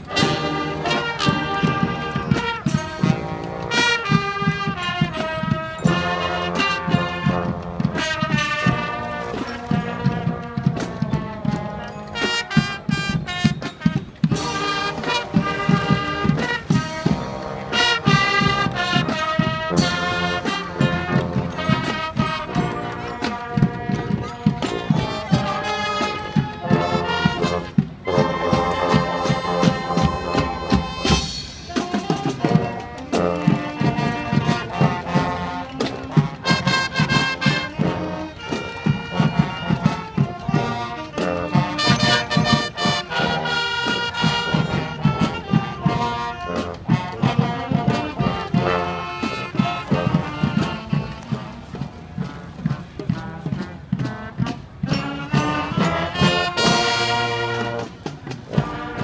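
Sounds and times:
brass and saxophones: 0:00.0 - 0:59.0
steady drum beat: 0:00.0 - 0:59.0.

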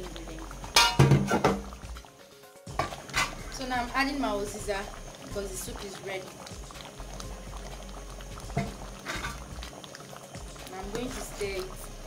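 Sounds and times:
soup bubbling in a pot: 0:00.0 - 0:12.0.

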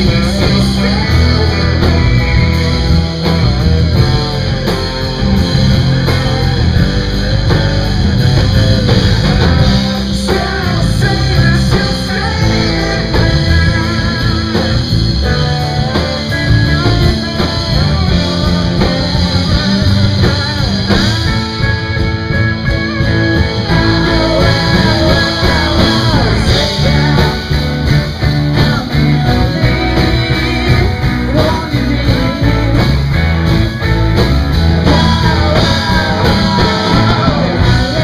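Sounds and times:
electric guitar: 0:00.0 - 0:38.0
rock band playing loud: 0:00.0 - 0:38.0.

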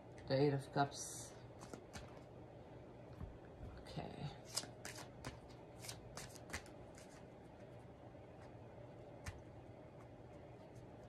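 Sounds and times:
cards being shuffled: 0:01.5 - 0:02.3, 0:04.4 - 0:07.3.

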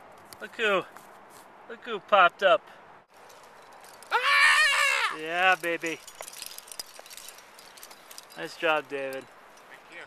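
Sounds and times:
climbing hardware clinking: 0:03.1 - 0:04.2, 0:05.1 - 0:09.8.

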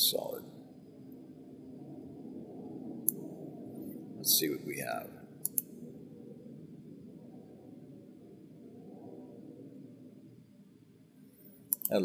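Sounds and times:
low background hum: 0:00.0 - 0:12.0
computer mouse clicks: 0:05.4 - 0:05.7, 0:11.7 - 0:12.0.

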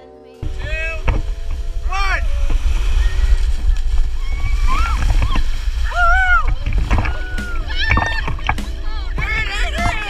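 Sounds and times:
low rumble of water and wind: 0:00.4 - 0:10.0
splashing through shallow water: 0:00.4 - 0:10.0
people shouting and whooping: 0:03.0 - 0:10.0.

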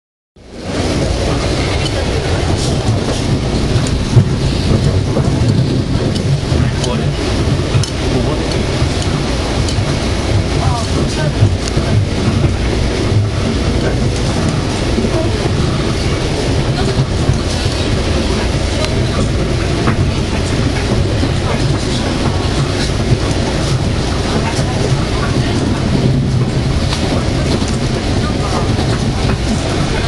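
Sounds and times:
train wheels on rails: 0:00.4 - 0:30.0.

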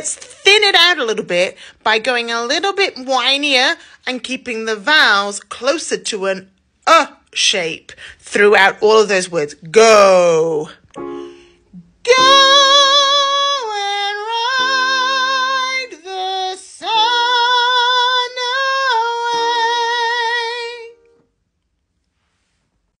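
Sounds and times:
woman singing high phrase: 0:11.8 - 0:21.1.

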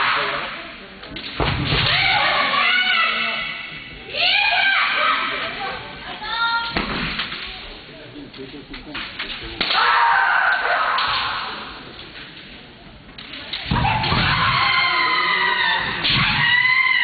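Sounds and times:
high drawn-out shouts: 0:01.9 - 0:05.7, 0:13.7 - 0:17.0
bamboo sword strikes cracking: 0:09.2 - 0:11.4.

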